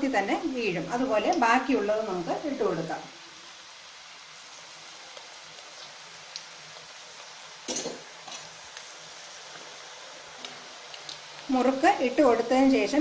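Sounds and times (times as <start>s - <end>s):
woman speaking: 0.0s - 3.1s, 11.5s - 13.0s
food sizzling in hot oil: 0.0s - 13.0s.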